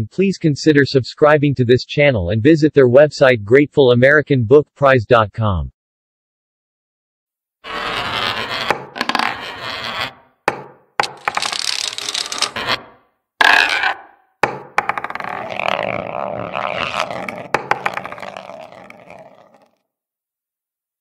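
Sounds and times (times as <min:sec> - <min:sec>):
balls rolling and rattling: 0:08.2 - 0:10.1, 0:11.0 - 0:12.8, 0:13.4 - 0:14.1, 0:14.8 - 0:19.8
balls knocking: 0:08.6 - 0:09.8, 0:10.5 - 0:12.7, 0:13.4 - 0:19.7.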